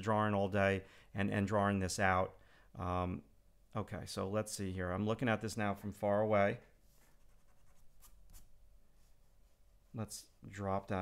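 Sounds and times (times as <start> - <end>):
pencil scratching on paper: 7.0 - 8.5.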